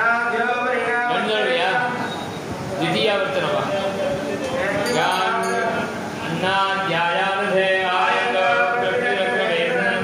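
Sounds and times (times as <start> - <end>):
man chanting into a microphone: 0.0 - 2.1, 2.8 - 10.0.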